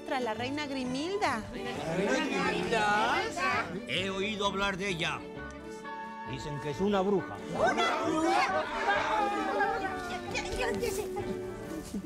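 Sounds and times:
group chatter of overlapping speech: 0:01.0 - 0:04.3, 0:07.2 - 0:12.0.

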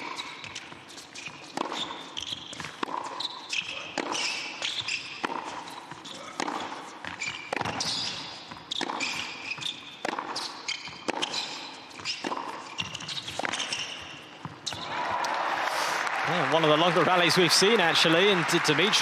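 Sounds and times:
tennis ball struck by racquets: 0:01.5 - 0:14.9.

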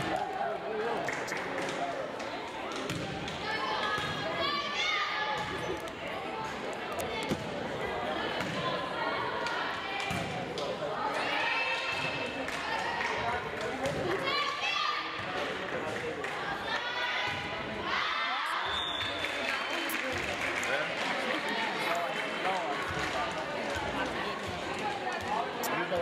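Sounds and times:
voices calling and chattering: 0:00.0 - 0:26.0.

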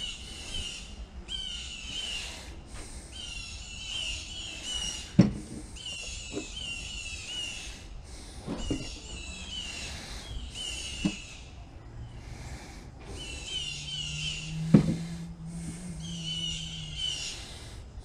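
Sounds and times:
songbird singing whistled phrases: 0:13.2 - 0:14.6, 0:16.0 - 0:17.4.

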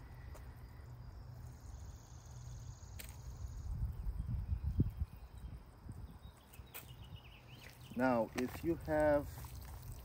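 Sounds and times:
water sprinkling from watering can: 0:08.0 - 0:10.0.

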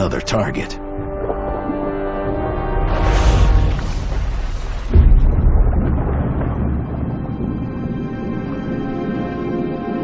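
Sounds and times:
background music score: 0:00.0 - 0:05.2
deep boom with low rumble: 0:02.4 - 0:08.8.

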